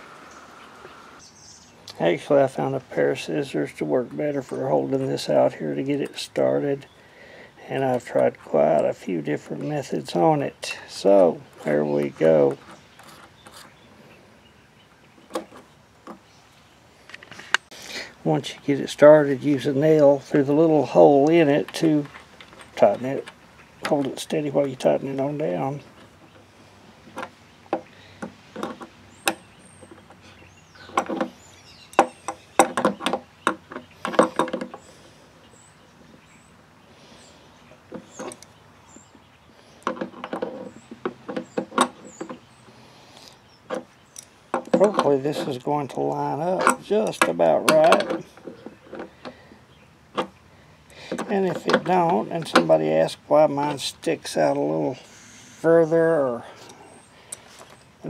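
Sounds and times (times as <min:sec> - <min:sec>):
small metal clicks and knocks: 0:25.9 - 0:30.2, 0:30.8 - 0:34.9, 0:37.7 - 0:38.6, 0:39.7 - 0:42.5, 0:43.7 - 0:52.9.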